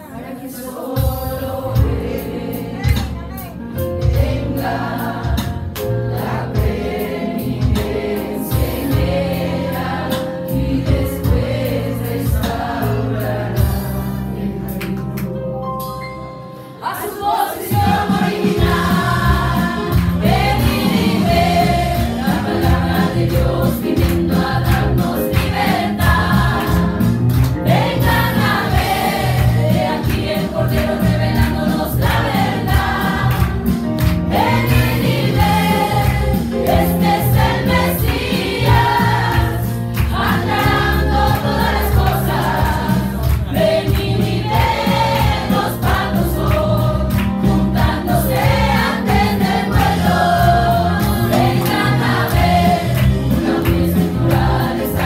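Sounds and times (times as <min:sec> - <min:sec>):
group singing worship song: 0:00.0 - 0:15.4, 0:16.6 - 0:55.0
accompaniment with steady beat: 0:00.8 - 0:15.0, 0:17.2 - 0:55.0.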